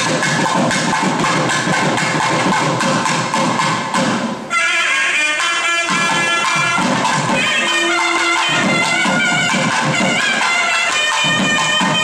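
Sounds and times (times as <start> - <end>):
barrel drum fast strokes: 0.0 - 4.5, 5.7 - 12.0.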